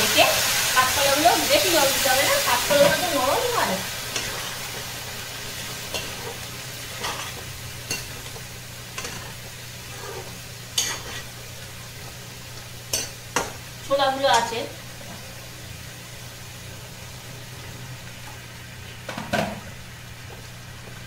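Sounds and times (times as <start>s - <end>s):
low sizzle of frying: 0.0s - 21.0s
metal spatula scraping a pan: 9.0s - 11.3s.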